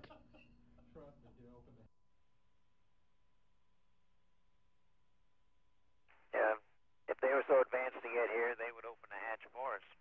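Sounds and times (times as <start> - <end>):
person speaking over radio: 6.4 - 10.0.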